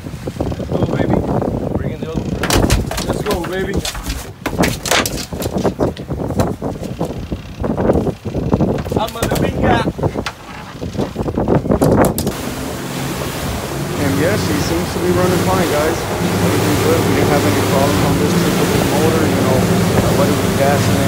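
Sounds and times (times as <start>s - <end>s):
fish flopping on boat deck: 0.0s - 21.0s
outboard motor running: 0.0s - 21.0s
rushing wake: 0.0s - 21.0s
wind on microphone: 0.0s - 21.0s
people talking: 0.6s - 1.2s, 1.8s - 2.3s, 2.9s - 4.0s, 8.9s - 10.2s, 13.9s - 21.0s.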